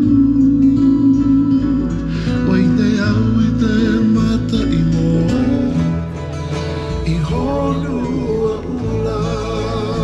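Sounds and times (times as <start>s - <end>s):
person singing: 0.0s - 10.0s
plucked guitar strings: 0.0s - 10.0s.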